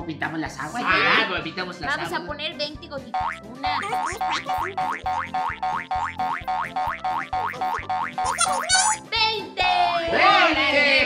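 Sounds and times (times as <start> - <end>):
cartoon boing sound effect: 3.2 - 9.0.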